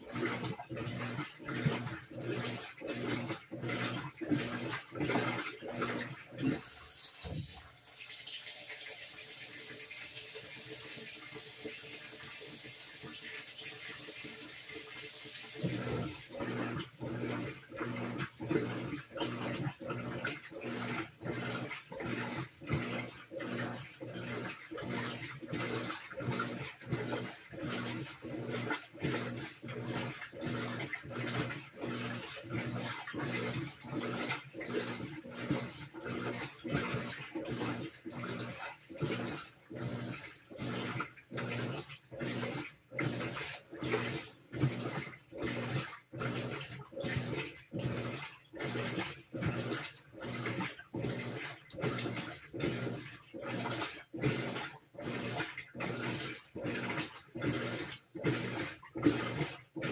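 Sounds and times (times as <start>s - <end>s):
washing machine agitating: 0.0s - 59.9s
washing machine water filling: 0.0s - 59.9s.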